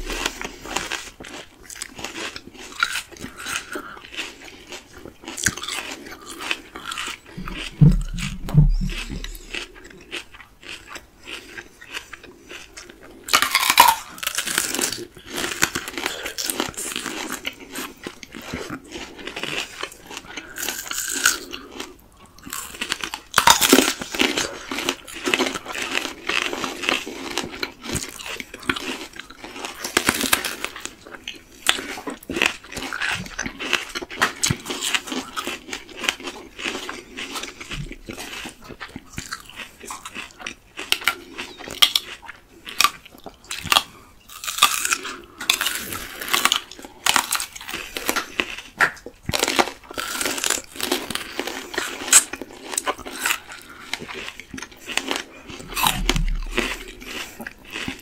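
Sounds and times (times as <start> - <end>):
crunching bites of fruit: 0.0 - 58.0
people chewing: 0.0 - 58.0.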